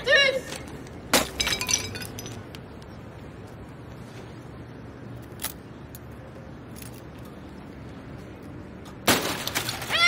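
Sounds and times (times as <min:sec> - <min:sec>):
glass crashing on pavement: 0:01.1 - 0:02.5, 0:09.0 - 0:10.0.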